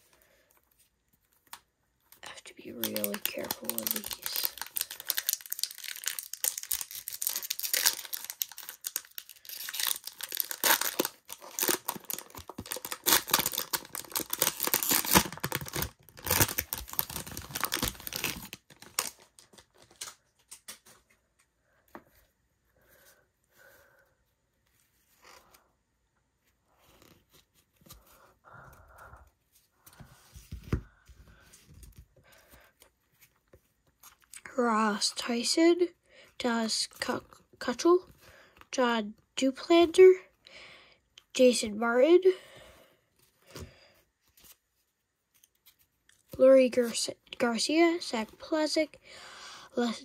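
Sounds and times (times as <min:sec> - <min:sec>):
plastic wrapper tearing and crinkling: 0:02.3 - 0:20.8
cards rustling and tapping: 0:02.7 - 0:22.2.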